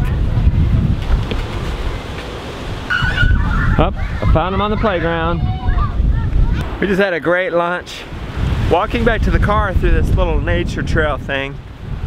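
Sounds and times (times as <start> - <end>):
wind buffeting microphone: 0.0 - 6.9, 7.9 - 12.0.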